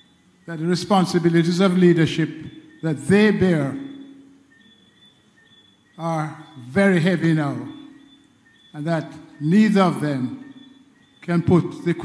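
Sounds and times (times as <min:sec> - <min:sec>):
man speaking over amplifier: 0:00.5 - 0:04.0, 0:06.0 - 0:07.8, 0:08.8 - 0:10.4, 0:11.2 - 0:12.0.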